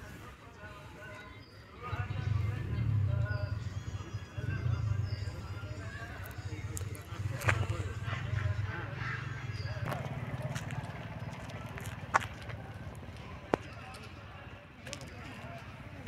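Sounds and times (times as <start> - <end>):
faint indistinct voices: 0.0 - 16.0
steady low rumble: 1.9 - 13.6.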